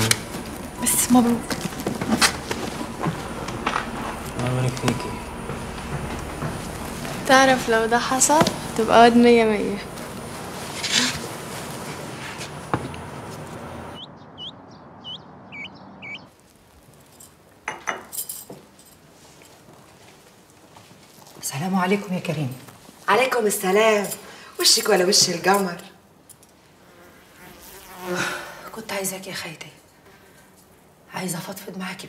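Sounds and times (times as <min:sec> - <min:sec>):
woman speaking: 0:00.8 - 0:01.7, 0:07.2 - 0:10.0, 0:21.4 - 0:26.0, 0:28.7 - 0:29.8
small bird chirping: 0:13.9 - 0:16.3.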